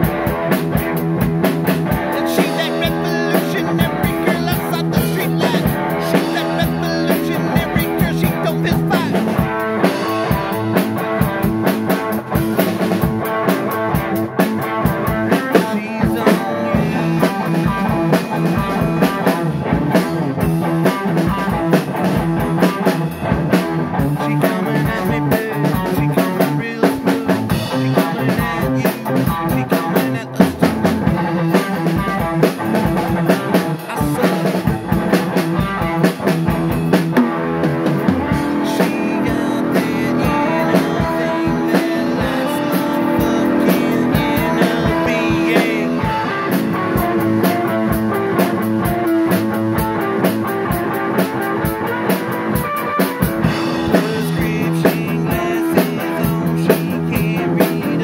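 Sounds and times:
drum kit quick hits: 0:00.0 - 0:58.0
rock band playing loudly: 0:00.0 - 0:58.0.

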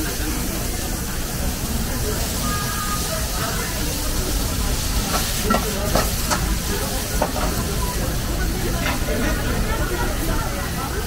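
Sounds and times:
gas burner rumble: 0:00.0 - 0:11.0
vegetables sizzling in wok: 0:00.0 - 0:11.0
metal clanks of wok: 0:05.0 - 0:07.7, 0:08.7 - 0:09.4.

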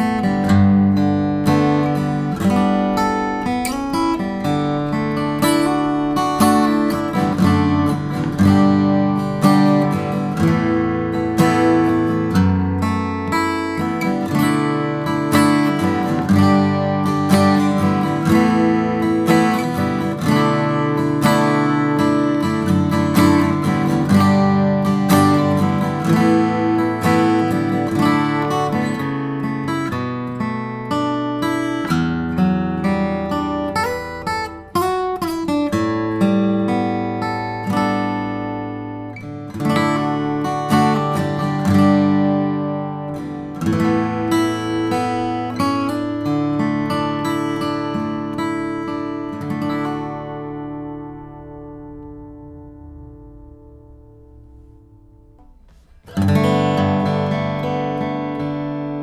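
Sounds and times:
acoustic guitar strummed and picked: 0:00.0 - 0:59.0.

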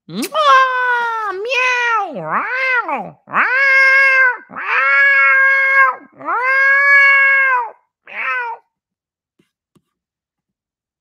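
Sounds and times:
man imitating cat meows: 0:00.1 - 0:08.7.

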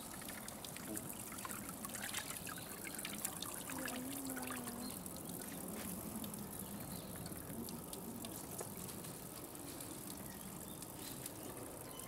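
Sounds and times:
water trickling and splashing: 0:00.0 - 0:12.0.

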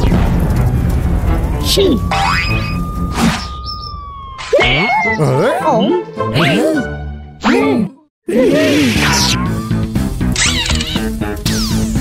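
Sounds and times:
cartoon background music: 0:01.4 - 0:12.0
comic boing: 0:02.1 - 0:02.8.

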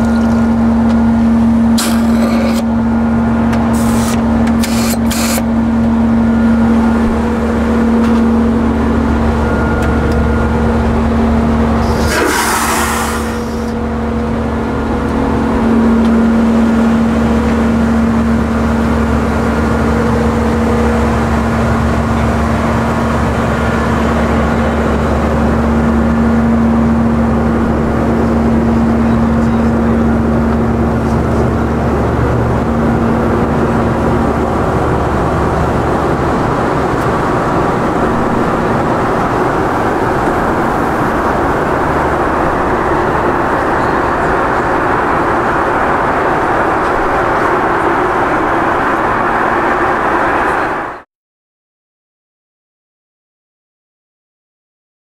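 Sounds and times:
jet engine drone: 0:00.0 - 0:51.1
airflow rushing: 0:01.3 - 0:51.0.

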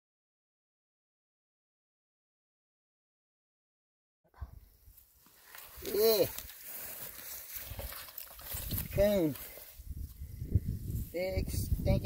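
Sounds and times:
faint wet rustling: 0:04.9 - 0:09.8
man saying yeah: 0:05.8 - 0:06.4.

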